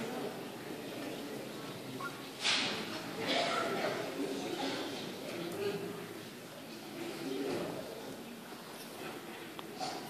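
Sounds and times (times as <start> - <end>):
murmur of audience voices: 0.0 - 10.0.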